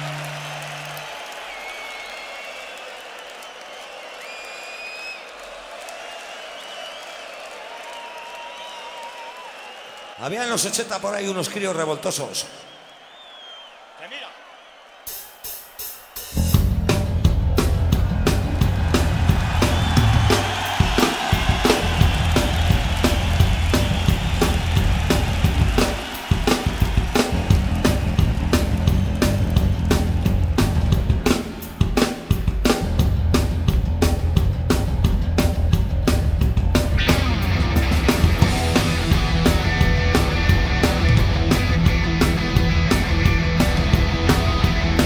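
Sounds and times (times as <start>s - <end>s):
hard rock band playing: 15.2s - 45.0s.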